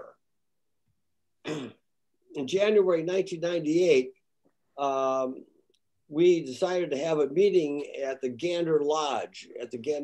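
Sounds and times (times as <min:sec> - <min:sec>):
man clearing throat: 0:01.4 - 0:01.9.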